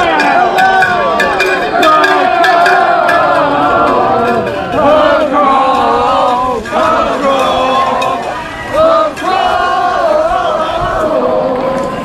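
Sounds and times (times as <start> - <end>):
crowd singing loudly: 0.0 - 12.0.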